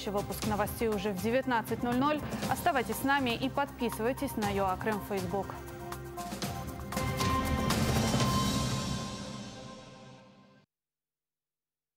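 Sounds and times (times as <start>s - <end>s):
news theme music: 0.0s - 10.6s.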